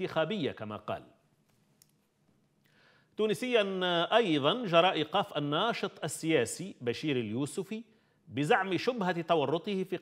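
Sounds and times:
man speaking: 0.0s - 1.2s, 3.2s - 10.0s.

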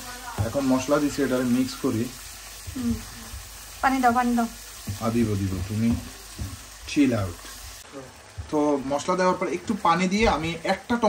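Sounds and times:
onions sizzling in oil: 0.0s - 11.0s.

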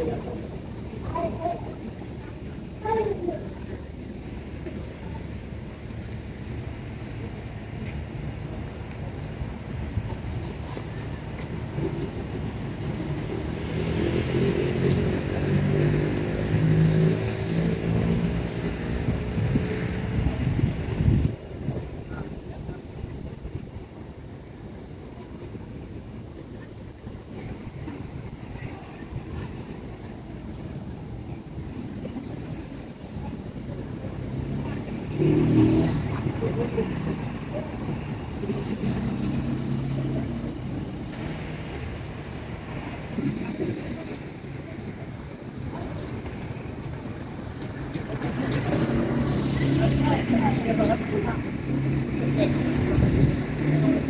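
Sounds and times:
outdoor background noise: 0.0s - 54.0s
motor vehicle passing: 34.4s - 40.6s.

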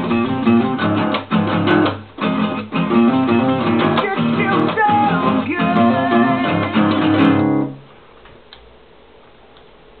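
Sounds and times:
acoustic guitar strumming: 0.0s - 7.9s.

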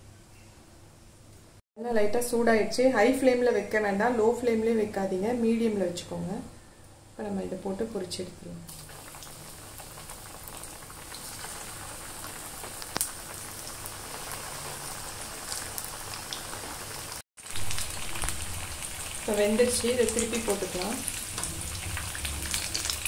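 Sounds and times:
food deep-frying in oil: 8.7s - 23.0s.

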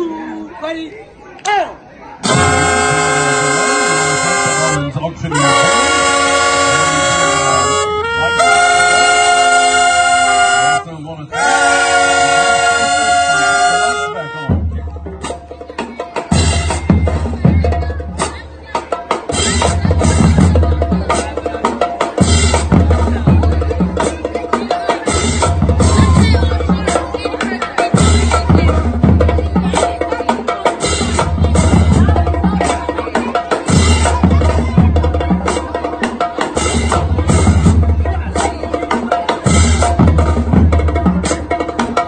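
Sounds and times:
marching band playing: 2.2s - 42.0s.

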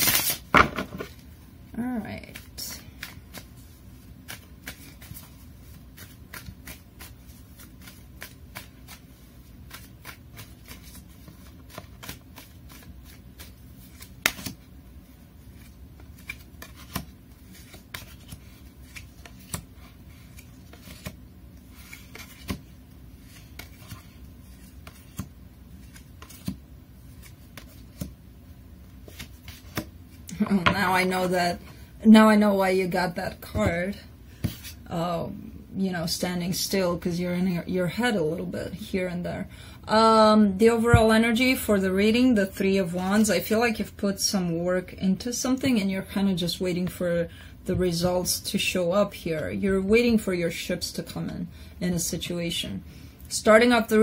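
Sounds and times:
cards shuffled and laid down: 0.0s - 1.2s, 9.7s - 14.6s, 15.6s - 28.2s, 29.0s - 31.0s.

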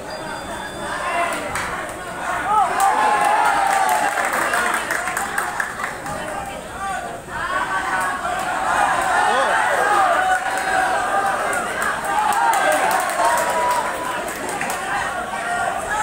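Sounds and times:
crowd shouting: 0.0s - 16.0s.

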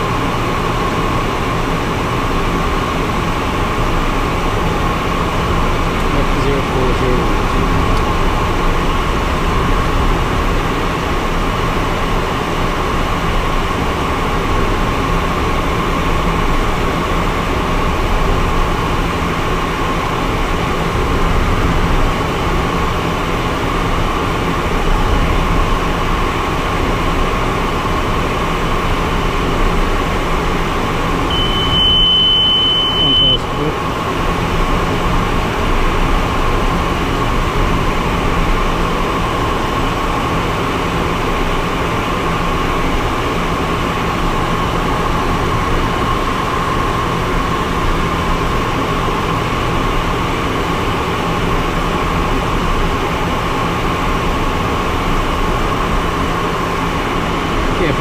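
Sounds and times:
small aircraft cabin noise: 0.0s - 58.0s
high steady cockpit tone: 6.0s - 8.1s, 31.3s - 33.9s.

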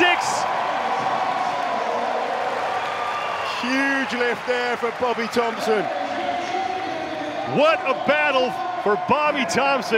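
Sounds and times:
crowd cheering and clapping: 0.0s - 9.9s.

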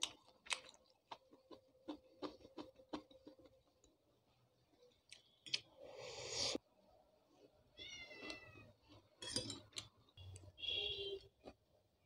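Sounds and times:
person slurping noodles: 5.8s - 6.6s.

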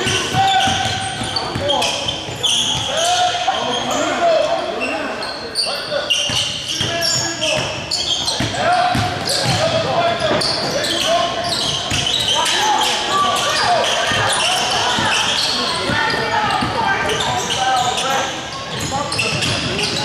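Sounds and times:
sneakers squeaking on court: 0.0s - 20.0s.

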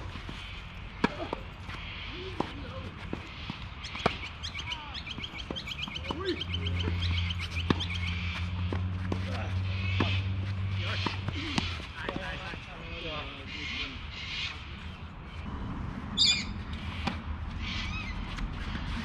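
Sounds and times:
birds calling: 0.0s - 19.0s.

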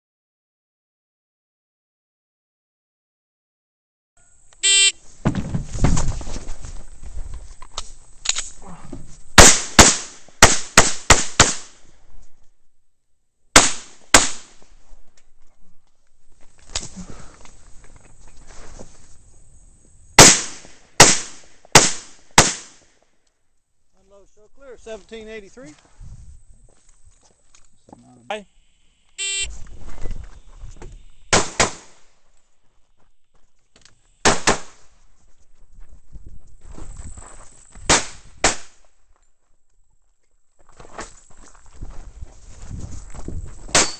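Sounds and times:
gun handling clicks: 8.2s - 8.6s
pistol shots: 9.4s - 11.7s, 13.6s - 14.5s, 20.2s - 22.8s, 31.3s - 32.0s, 34.2s - 34.8s
pistol shots with echo: 31.3s - 32.0s.

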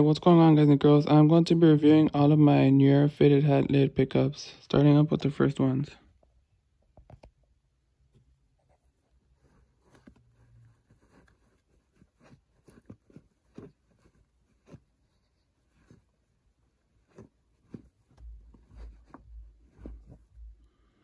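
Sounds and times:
fabric caps rustling: 6.0s - 21.0s
low muffled bumps: 17.2s - 21.0s.

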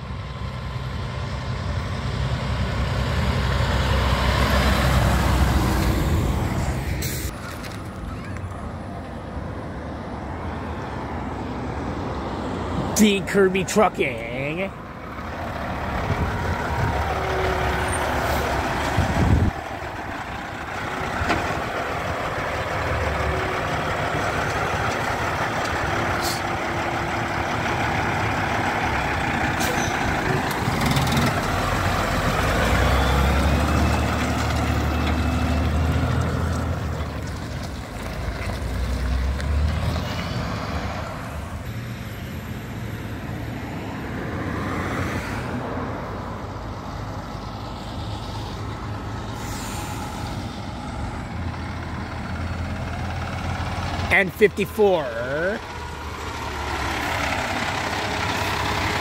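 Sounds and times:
truck diesel engine accelerating: 0.0s - 59.0s
truck engine approaching: 0.0s - 59.0s
air brake hisses: 49.3s - 50.3s.

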